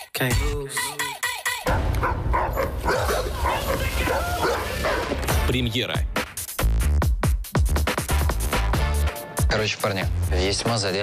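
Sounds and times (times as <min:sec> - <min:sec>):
dog barking: 0:01.7 - 0:05.2.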